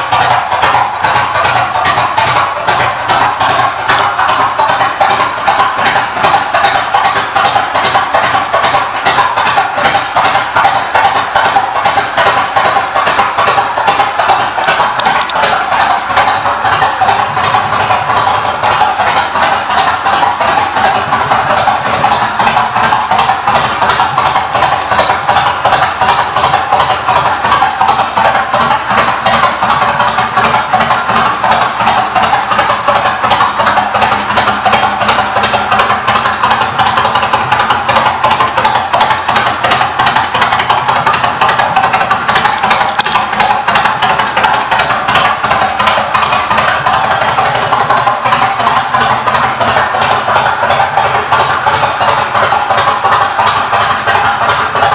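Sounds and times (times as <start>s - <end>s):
motorcycle engine idling: 0.0s - 54.9s.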